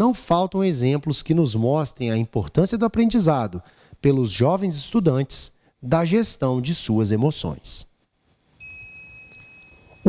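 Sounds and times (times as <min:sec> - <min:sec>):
chime ringing: 0:08.6 - 0:10.0.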